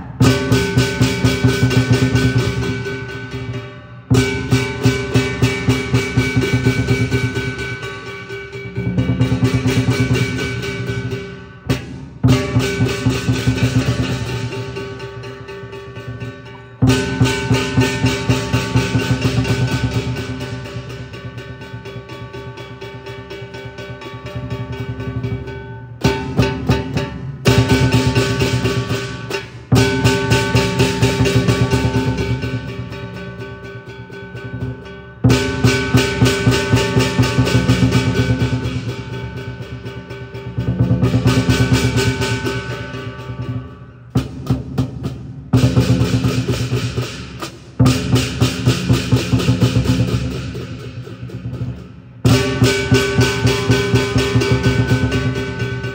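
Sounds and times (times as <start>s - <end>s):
large drum beaten in fast rolls: 0.0s - 3.5s, 8.6s - 15.6s, 16.8s - 22.6s, 26.0s - 33.2s, 35.3s - 43.6s, 44.2s - 55.9s
gong ringing: 0.0s - 11.4s, 12.2s - 44.6s
cymbals clashing: 0.0s - 55.9s.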